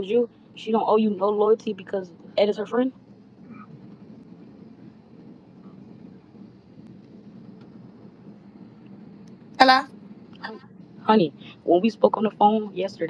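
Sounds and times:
low hum and hiss: 0:00.0 - 0:13.0.

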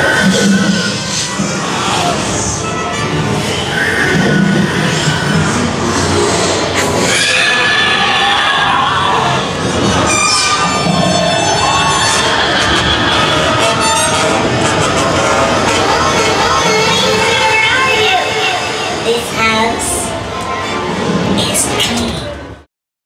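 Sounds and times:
eerie music: 0:00.0 - 0:22.0
spooky sound effects: 0:00.0 - 0:22.3.

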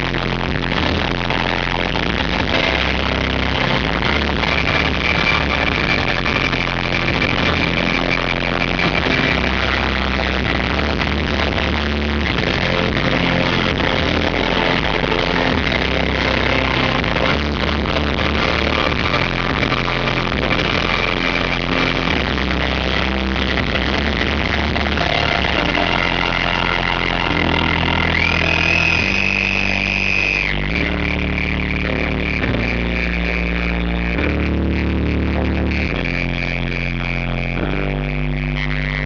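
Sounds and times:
high held tone sliding up: 0:00.0 - 0:39.0
sustained bass notes: 0:00.0 - 0:39.0
rock band playing loud: 0:00.2 - 0:29.7.

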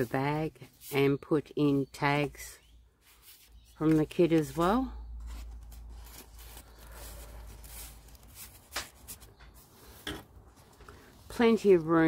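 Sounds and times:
page turning: 0:03.0 - 0:11.3
paper rustling and sliding: 0:03.0 - 0:11.4.

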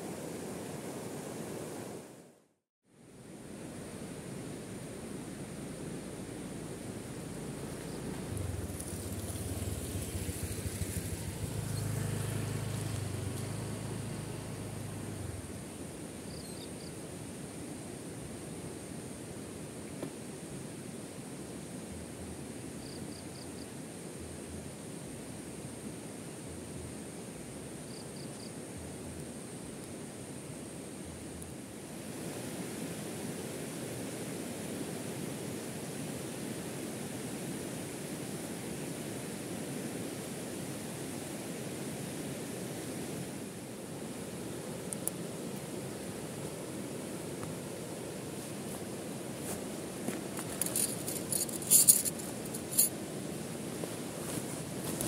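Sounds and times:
steady outdoor hiss: 0:00.0 - 0:55.0
motorcycle riding past on gravel: 0:07.6 - 0:15.6.

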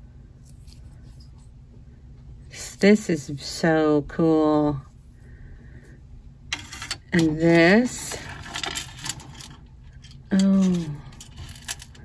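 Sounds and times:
jewelry clinking and rattling: 0:06.5 - 0:12.0.

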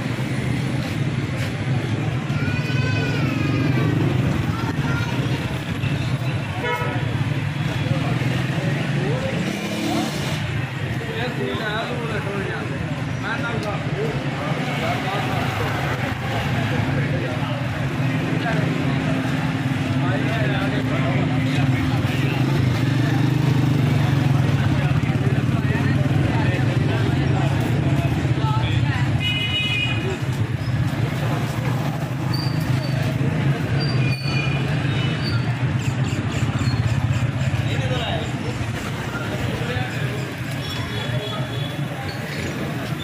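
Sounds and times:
motorcycle engines droning: 0:00.0 - 0:29.2, 0:30.0 - 0:43.0
people chattering: 0:00.0 - 0:43.0
vehicle horn: 0:06.6 - 0:07.2.

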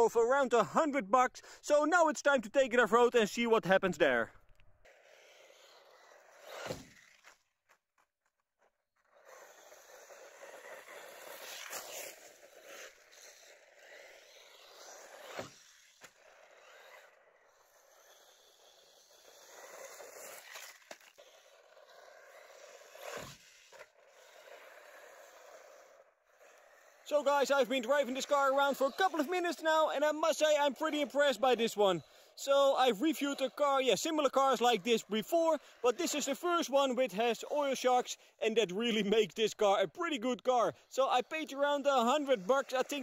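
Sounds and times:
toy truck tyres on gravel: 0:00.0 - 0:43.0.

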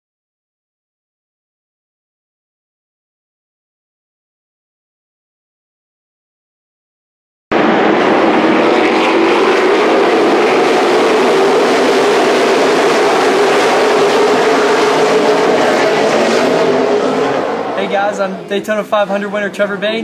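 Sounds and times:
race truck engines at speed: 0:07.5 - 0:20.0.

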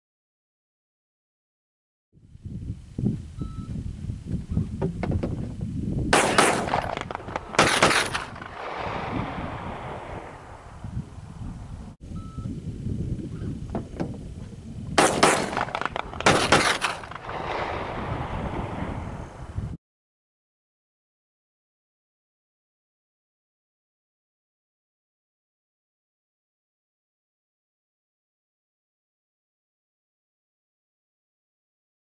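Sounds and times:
gunfire bursts with echo: 0:06.1 - 0:10.4, 0:15.0 - 0:18.6
low rumble: 0:17.1 - 0:19.8.

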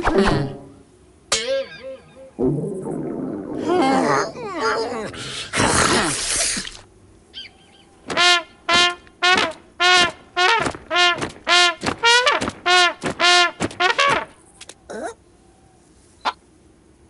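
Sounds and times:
short brass-like notes: 0:08.1 - 0:14.3.

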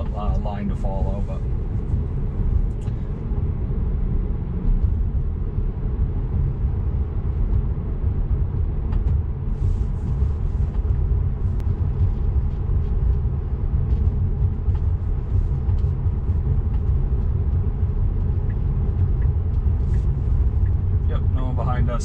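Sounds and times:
tyre and road noise in car cabin: 0:00.0 - 0:22.0.

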